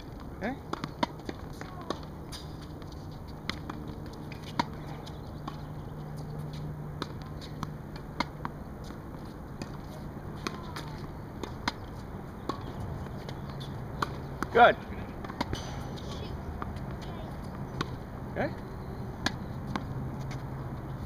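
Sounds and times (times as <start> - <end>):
steady low hum: 0.0 - 21.0
tennis balls bouncing on court: 0.0 - 21.0
tennis balls struck with rackets: 0.0 - 21.0.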